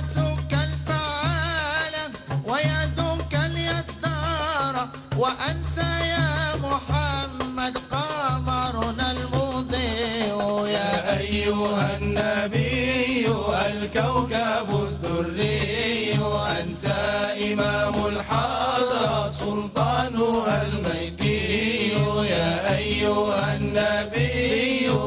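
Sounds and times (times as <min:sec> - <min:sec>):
frame drums with jingles: 0:00.0 - 0:25.0
men chanting a devotional song: 0:00.0 - 0:25.0.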